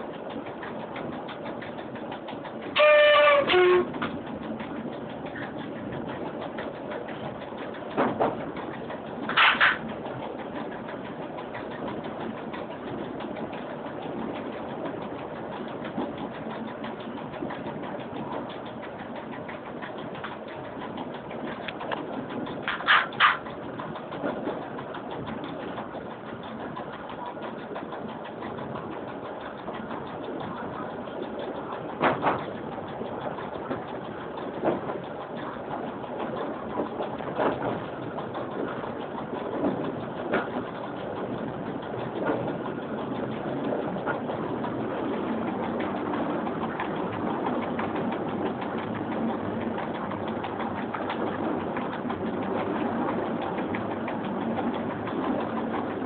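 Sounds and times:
train running rumble: 0.0 - 56.0.

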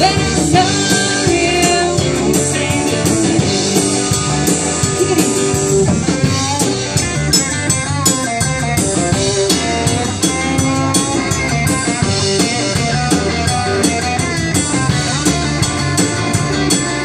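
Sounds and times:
woman singing: 0.0 - 3.5
drum kit beat: 0.0 - 17.0
live rock band playing: 0.0 - 17.0.

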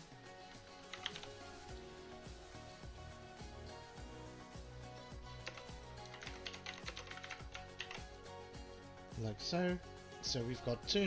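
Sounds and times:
background music: 0.0 - 11.0
computer keyboard typing: 0.8 - 1.4, 5.3 - 8.1.

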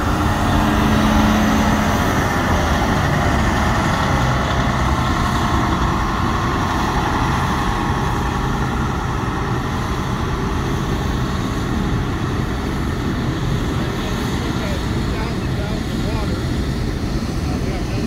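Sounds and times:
fire truck engine rumble: 0.0 - 18.0.

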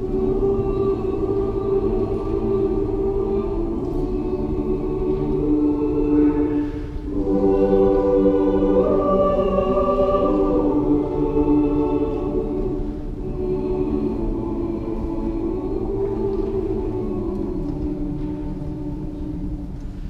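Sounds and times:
choir singing long notes: 0.0 - 20.0.

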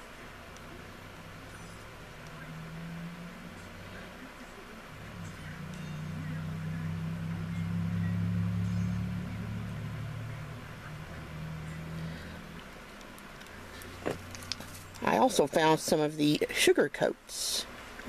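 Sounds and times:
low motor drone: 0.0 - 15.2.

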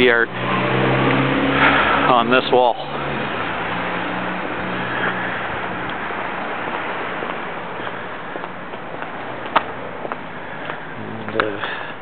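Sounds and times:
passing vehicle engine hum: 0.0 - 12.0
road noise: 0.0 - 12.0.

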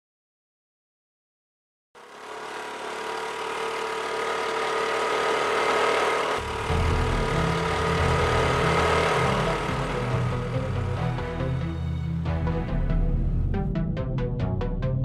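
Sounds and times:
scooter engine pulling away: 2.0 - 12.0
deep uneven rumble: 6.4 - 11.9.

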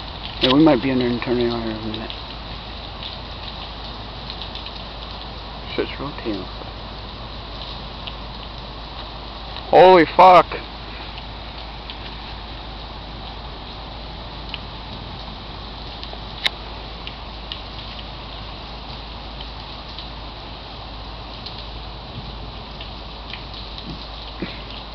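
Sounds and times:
rain pattering: 0.0 - 24.9.

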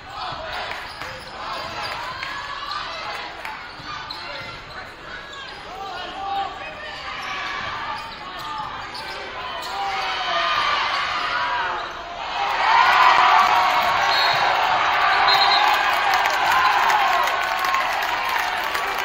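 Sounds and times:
spectators' voices and calls: 0.0 - 19.0.

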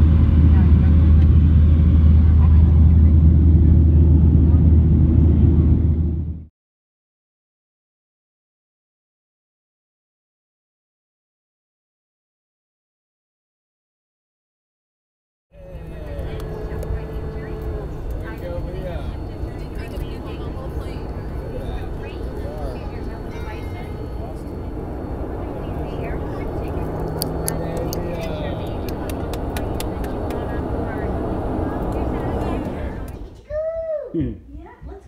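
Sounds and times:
airliner engine and air noise: 0.0 - 6.5, 15.6 - 33.4
voices: 15.6 - 35.0.

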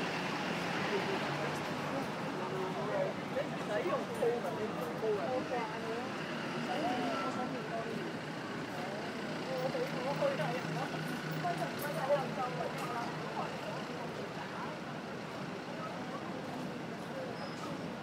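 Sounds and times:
voices talking indistinctly: 0.6 - 18.0.

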